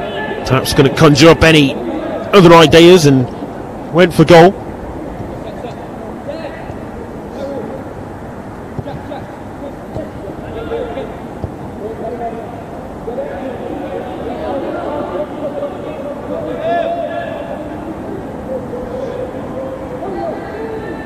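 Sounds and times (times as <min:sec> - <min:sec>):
ball being kicked: 0:08.7 - 0:09.3, 0:09.9 - 0:10.3, 0:11.4 - 0:11.7.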